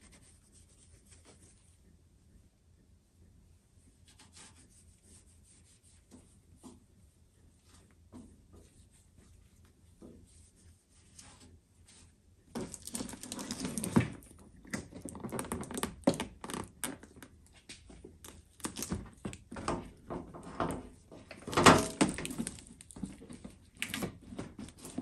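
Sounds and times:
plastic film crinkling: 12.6 - 14.2, 21.4 - 25.0.

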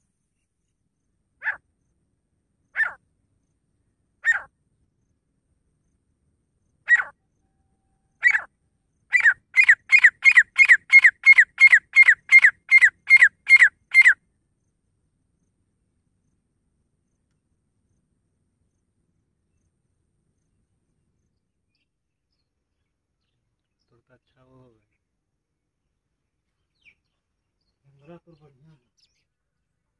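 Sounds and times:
francolin calling: 2.7 - 3.0, 4.2 - 4.5, 6.8 - 14.2.

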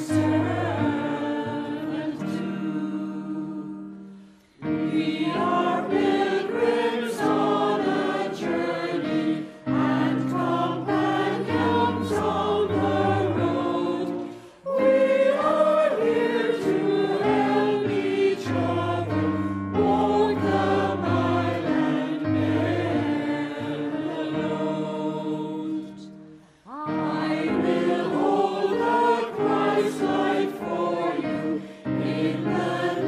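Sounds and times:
mixed choir singing: 0.0 - 33.0.

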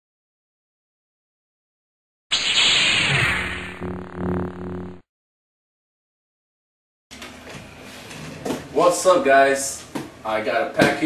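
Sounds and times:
hissing whoosh: 2.3 - 3.8
low electronic hum: 2.5 - 5.0.

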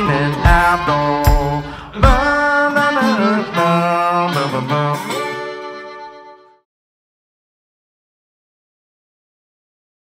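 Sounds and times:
drums: 0.0 - 2.9
electric guitar notes: 0.0 - 6.6
sharp drum hit: 0.5 - 2.4.

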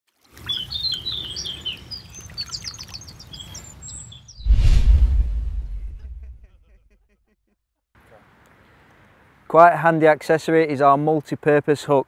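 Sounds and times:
songbirds chirping and trilling: 0.3 - 4.4
deep whoosh-boom sound effect: 4.4 - 6.6
low rumble: 4.4 - 6.6.

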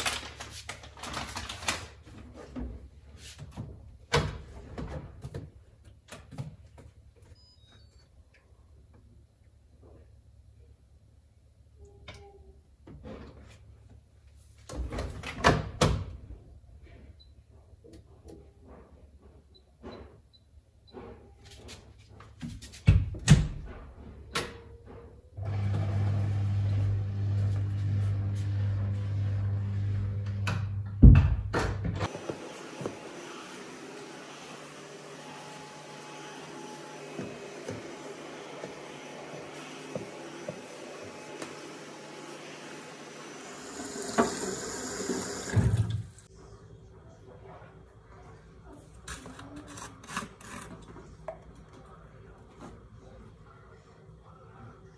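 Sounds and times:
water running: 37.3 - 46.3.

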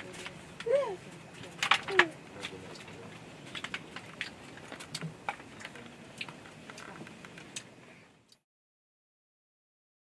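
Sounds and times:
small objects clicking and tapping: 3.5 - 7.7.

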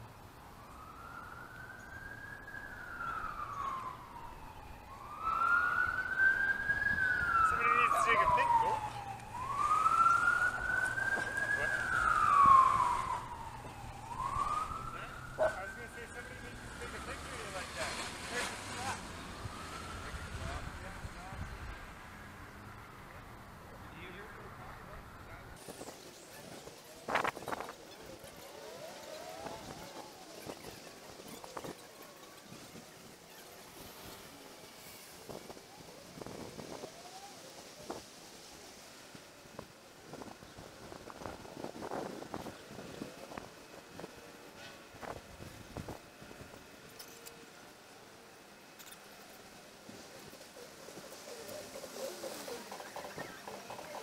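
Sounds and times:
emergency siren wailing: 0.2 - 25.6, 26.3 - 48.8.

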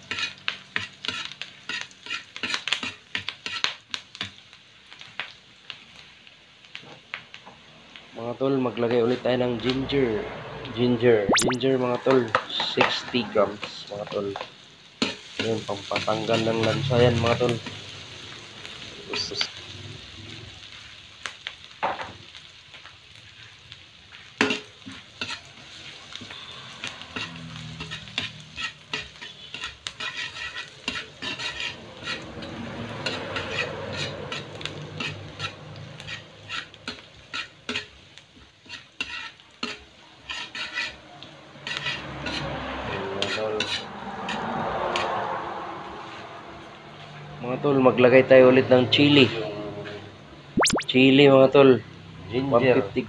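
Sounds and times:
metal spatula scraping pan: 0.0 - 3.7, 24.4 - 25.5, 26.2 - 38.0, 38.6 - 41.0, 41.6 - 44.5
food sizzling in a wok: 0.0 - 53.0.

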